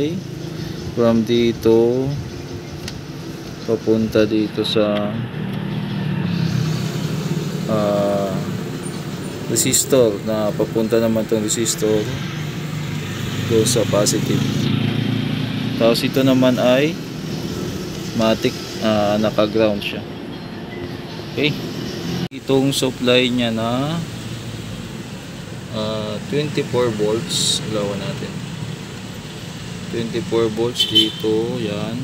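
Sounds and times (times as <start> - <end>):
vehicle engine rumbling: 0.0 - 32.0.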